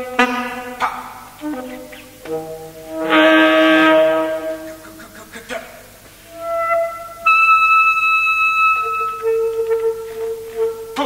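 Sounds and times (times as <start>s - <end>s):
alto saxophone held notes: 0.0s - 5.3s, 6.2s - 11.0s.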